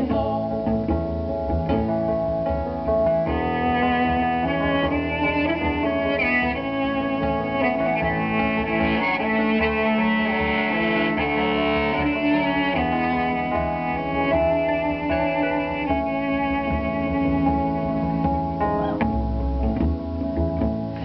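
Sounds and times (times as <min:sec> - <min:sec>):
keyboards playing sustained chords: 0:00.0 - 0:21.0.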